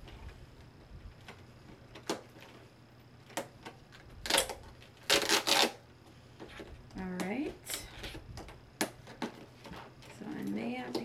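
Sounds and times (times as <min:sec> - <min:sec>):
packaging scraping and crinkling: 0:04.3 - 0:05.8.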